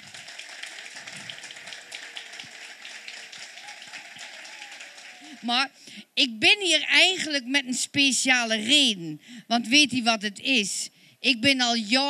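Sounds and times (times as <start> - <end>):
audience applauding: 0.0 - 5.6.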